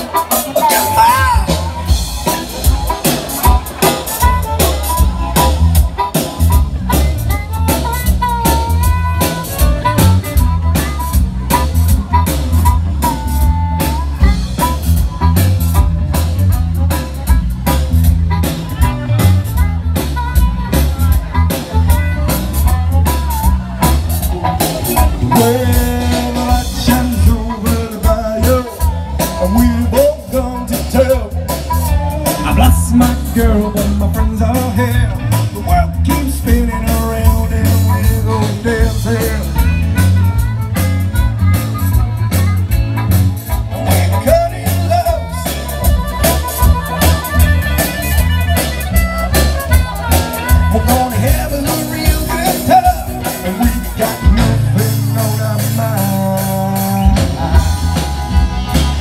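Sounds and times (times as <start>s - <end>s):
blues band playing: 0.0s - 59.0s
harmonica lead lines: 0.0s - 59.0s
steady drum beat: 0.0s - 59.0s.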